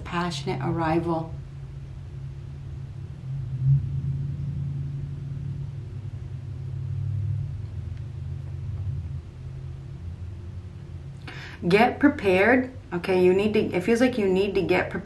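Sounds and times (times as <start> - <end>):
low steady rumble: 0.0 - 15.0
bump: 3.2 - 9.8.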